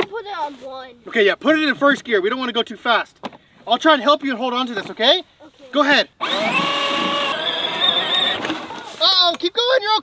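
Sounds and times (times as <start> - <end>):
electric toy tractor motor whine: 6.2 - 8.9.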